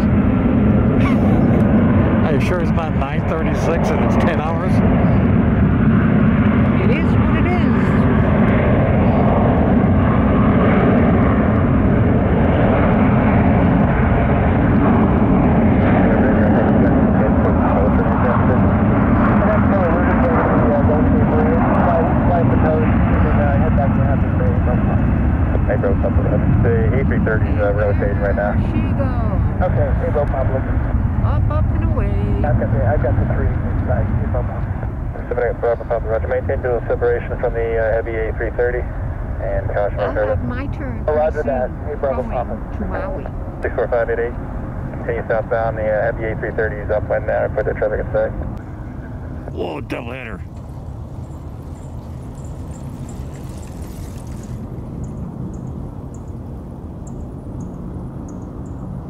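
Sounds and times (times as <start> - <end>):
jet taking off: 0.0 - 40.6.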